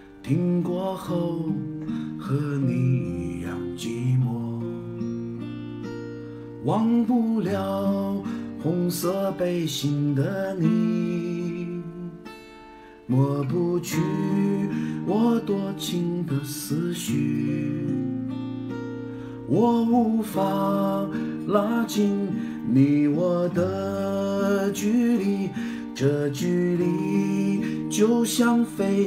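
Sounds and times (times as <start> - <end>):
acoustic guitar strummed: 0.0 - 29.0
man singing a slow ballad: 0.0 - 29.0.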